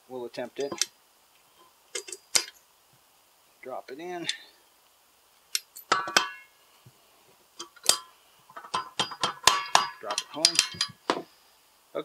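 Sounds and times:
light metallic clinks: 0.6s - 0.9s, 1.6s - 2.6s, 5.5s - 6.5s, 7.6s - 11.3s.

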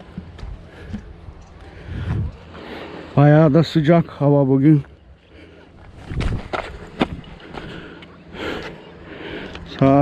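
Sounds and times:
footsteps crunching on stony ground: 4.0s - 8.8s.

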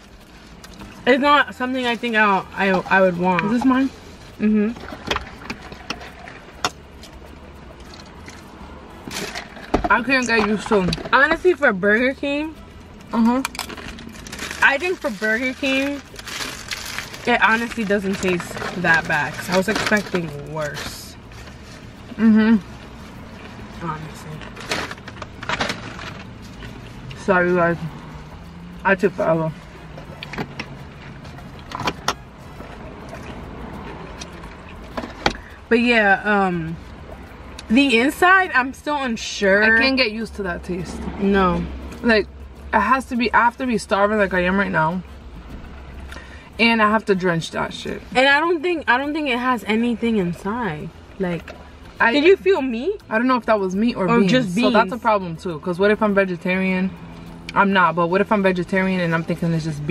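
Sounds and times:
paper wrapper crackling: 13.6s - 20.2s
person chewing food: 32.6s - 34.9s.

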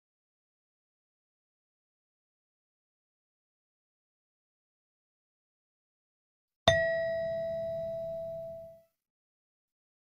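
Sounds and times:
bell-like chime: 6.7s - 8.8s.

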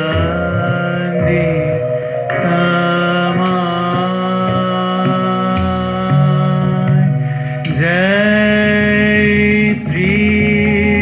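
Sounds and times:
keyboard accompaniment: 0.0s - 11.0s
man singing a hymn: 0.0s - 11.0s.

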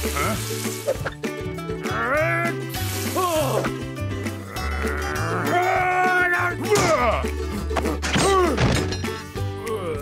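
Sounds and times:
cartoon character groaning: 4.4s - 5.7s.

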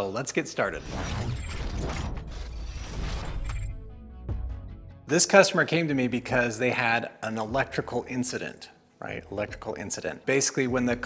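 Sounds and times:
mechanical whir: 0.7s - 3.7s.

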